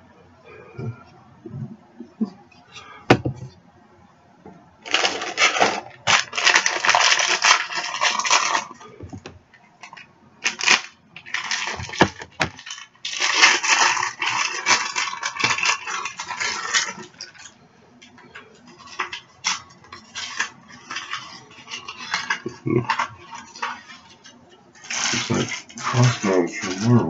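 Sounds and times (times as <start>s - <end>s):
plastic packaging crinkling: 4.8s - 27.0s.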